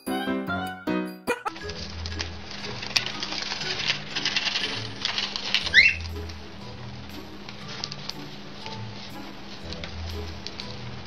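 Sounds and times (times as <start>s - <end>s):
soft background music: 0.0s - 11.0s
bird shredding paper: 1.6s - 11.0s
bird chirp: 5.7s - 6.1s.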